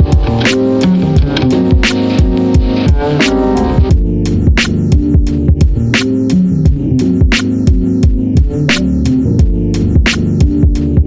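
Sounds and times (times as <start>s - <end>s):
lo-fi hip hop beat: 0.0s - 11.0s.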